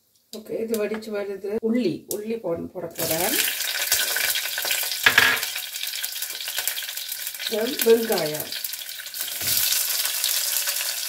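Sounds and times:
garlic sizzling in a pot: 2.2 - 11.0.

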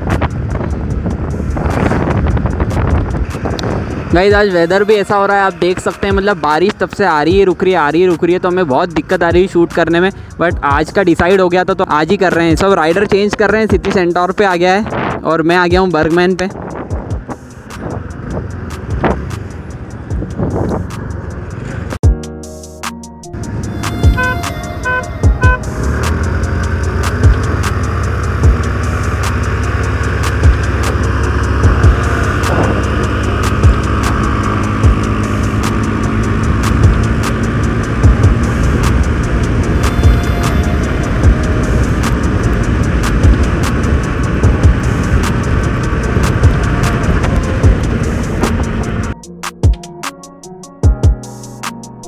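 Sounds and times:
background music with steady beat: 0.0 - 52.0
wind and road noise: 0.0 - 52.0
scooter accelerating: 23.5 - 49.2
short horn beeps: 24.1 - 25.7.

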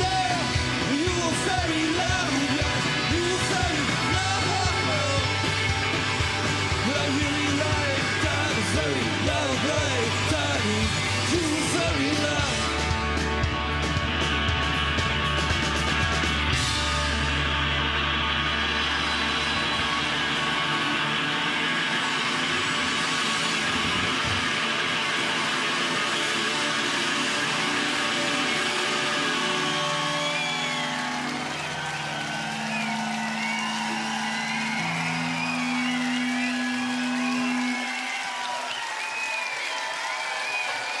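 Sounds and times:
bass guitar: 0.0 - 38.3
crowd cheering and whistling: 0.0 - 41.0
drums: 0.0 - 41.0.

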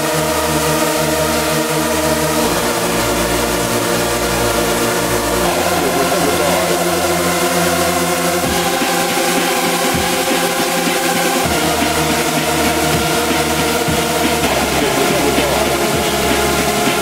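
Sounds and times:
distorted synth chords: 0.0 - 17.0
sustained bass: 0.0 - 17.0.

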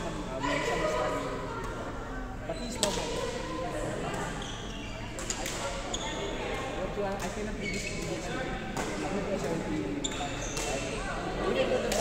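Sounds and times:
chatter in a hall: 0.0 - 12.0
rackets hitting shuttlecock: 8.7 - 10.9.

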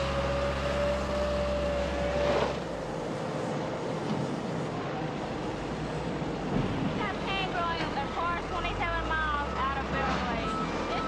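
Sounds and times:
steady mechanical noise: 0.0 - 11.0.

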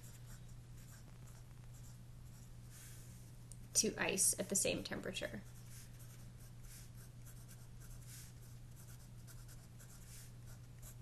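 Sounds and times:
steady low hum: 0.0 - 11.0
pen scratching on paper: 5.4 - 11.0.

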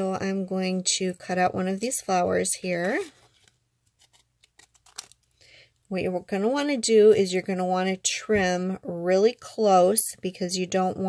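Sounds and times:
scissors snipping paper: 4.0 - 5.2.

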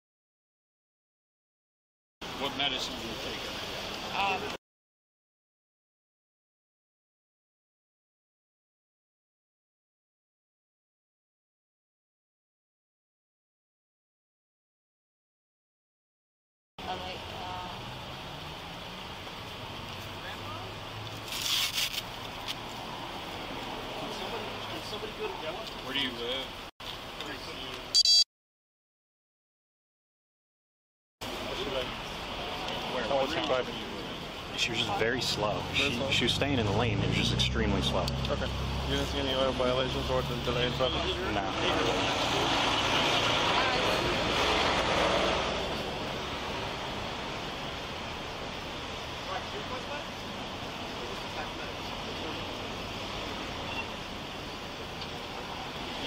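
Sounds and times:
road traffic noise: 2.2 - 4.6, 16.8 - 28.2, 31.2 - 56.0
vehicle passing: 34.7 - 54.2.

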